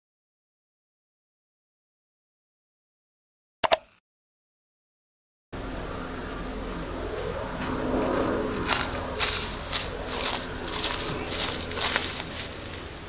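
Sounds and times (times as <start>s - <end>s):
footsteps crunching on straw: 7.1s - 13.0s.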